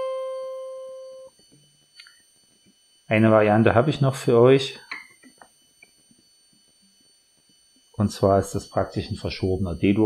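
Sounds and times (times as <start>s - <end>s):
acoustic guitar note: 0.0s - 1.3s.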